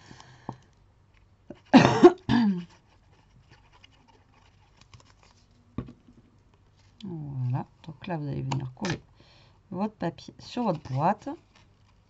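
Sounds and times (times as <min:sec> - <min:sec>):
person coughing: 0:01.5 - 0:02.7
paper handling ticks: 0:02.7 - 0:05.6, 0:10.7 - 0:12.0
person speaking: 0:07.0 - 0:09.0, 0:09.7 - 0:11.4.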